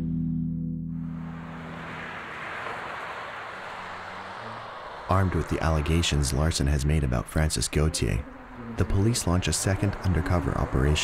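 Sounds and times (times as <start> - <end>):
steady rushing noise: 1.0 - 11.0.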